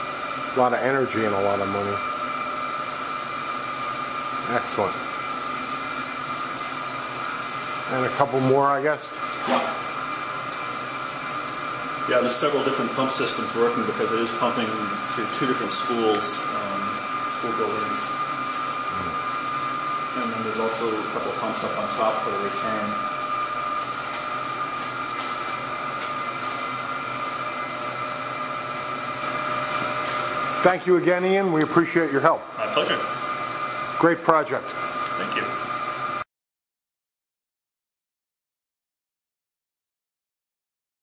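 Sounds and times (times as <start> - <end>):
pumps humming: 0.0 - 36.2
high-pitched whine: 18.8 - 19.4.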